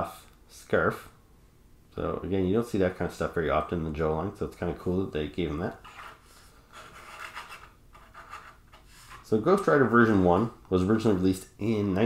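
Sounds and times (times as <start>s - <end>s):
base scraping on tabletop: 5.8s - 10.4s.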